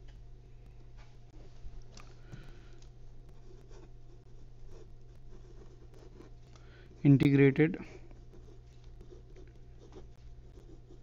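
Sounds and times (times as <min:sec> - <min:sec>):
low steady hum: 0:00.0 - 0:11.0
pen scratching on paper: 0:03.3 - 0:06.4, 0:08.1 - 0:11.0.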